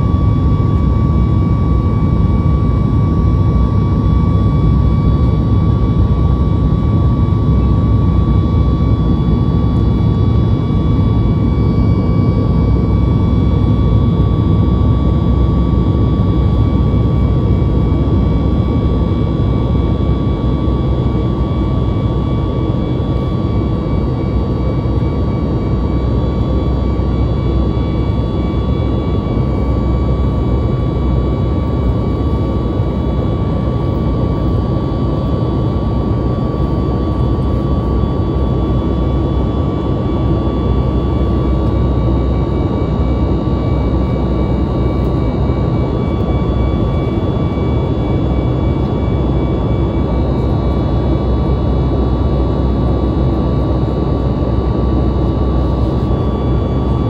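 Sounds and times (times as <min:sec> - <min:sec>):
high engine whine: 0:00.0 - 0:57.0
jet engines deep rumble: 0:00.0 - 0:57.0.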